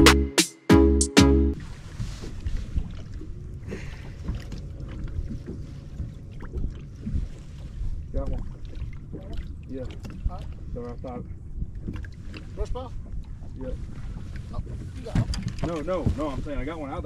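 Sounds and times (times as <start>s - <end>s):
waves lapping against boat hull: 1.6s - 17.0s
wind buffeting microphone: 2.0s - 17.0s.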